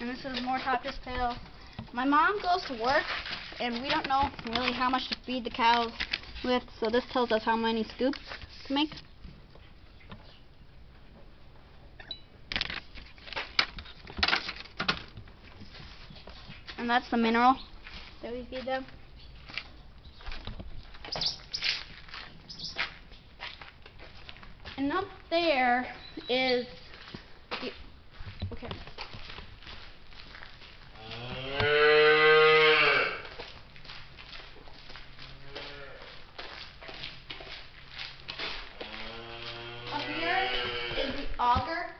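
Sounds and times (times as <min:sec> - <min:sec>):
objects rattling and knocking: 0:12.5 - 0:15.9
cow mooing: 0:31.0 - 0:33.3, 0:35.4 - 0:36.1, 0:38.8 - 0:41.3.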